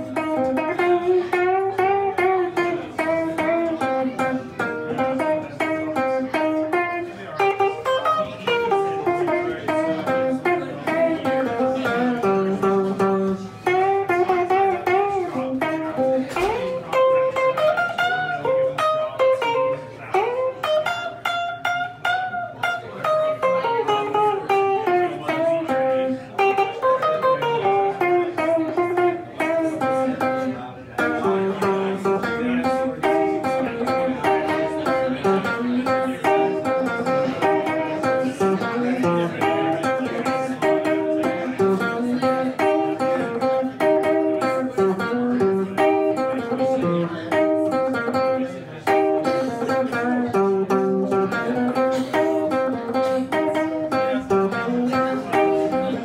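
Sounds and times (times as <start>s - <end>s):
electric guitar blues playing: 0.0s - 56.0s.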